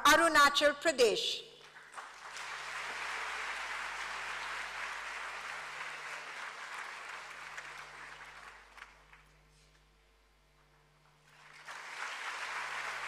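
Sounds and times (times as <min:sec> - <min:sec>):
audience applauding: 0:01.6 - 0:09.4, 0:11.3 - 0:13.0.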